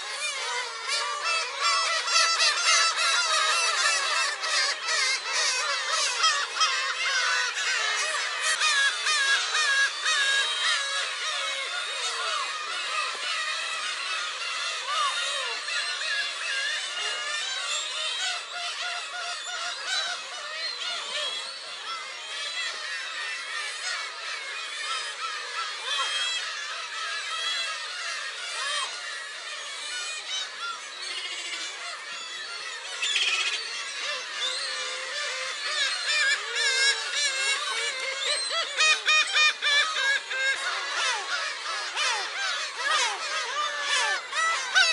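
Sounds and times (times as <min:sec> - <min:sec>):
flock of gulls calling: 0:00.0 - 0:44.9.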